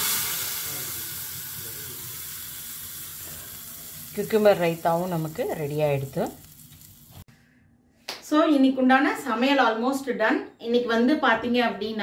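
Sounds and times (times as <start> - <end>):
hot oil sizzling: 0.0 - 7.3.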